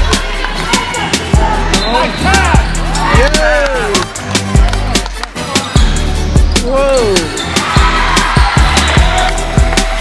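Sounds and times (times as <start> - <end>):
music with steady bass: 0.0 - 10.0.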